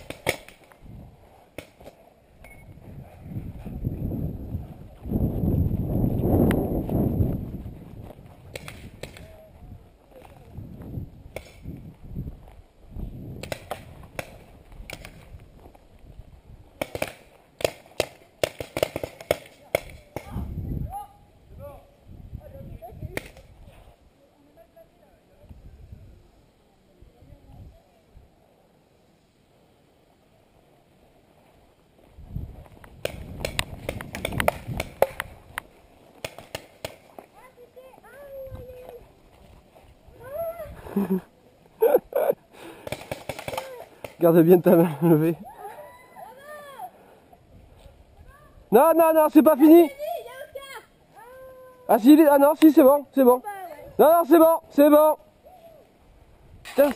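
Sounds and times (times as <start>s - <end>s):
paintball gun pops: 8.5s - 9.3s, 11.3s - 11.6s, 13.4s - 15.2s, 16.8s - 20.4s, 33.0s - 37.1s.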